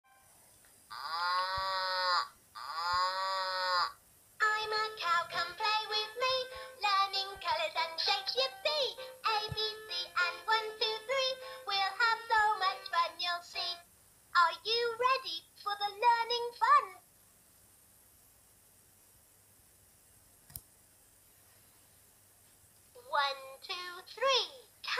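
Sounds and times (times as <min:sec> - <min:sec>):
recorded cow moos: 0:00.9 - 0:04.0.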